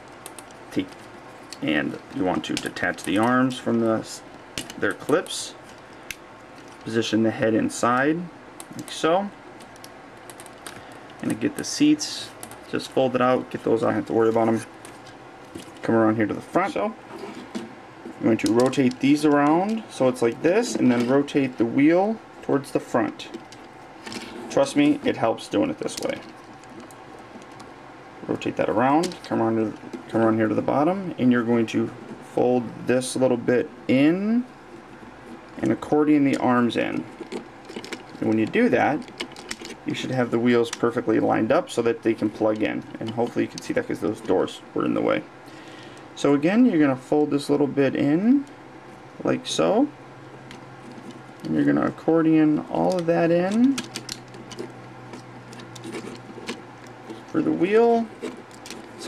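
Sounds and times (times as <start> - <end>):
steady low hiss: 0.0 - 59.0
plastic toy parts clicking: 37.2 - 39.8, 52.9 - 57.2.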